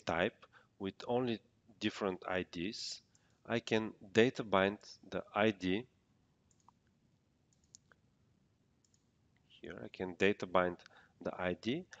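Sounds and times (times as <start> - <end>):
faint computer mouse clicks: 6.5 - 6.9, 7.5 - 8.0, 8.8 - 9.1.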